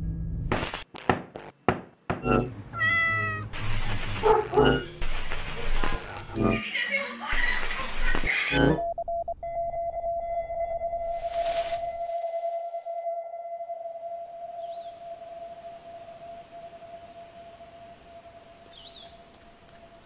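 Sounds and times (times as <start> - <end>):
burst of hiss: 11.2 - 12.5.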